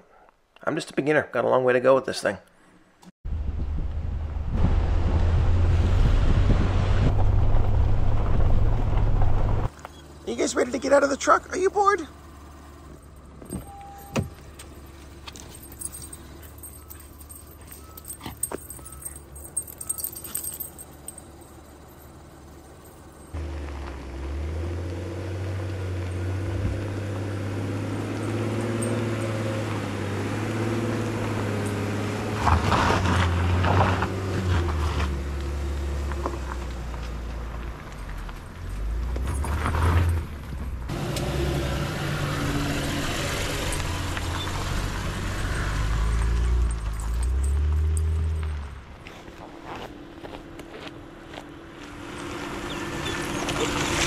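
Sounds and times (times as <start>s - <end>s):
truck engine and tyres on gravel: 3.3s - 54.0s
dog tags jingling: 13.1s - 23.4s, 28.2s - 29.7s, 45.4s - 48.6s.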